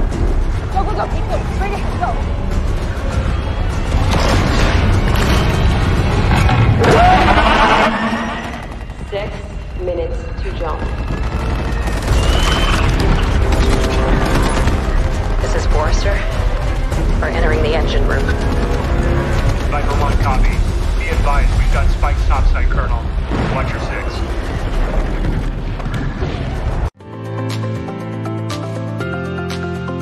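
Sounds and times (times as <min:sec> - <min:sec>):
action film music score: 0:00.0 - 0:30.0
booms: 0:19.7 - 0:26.9.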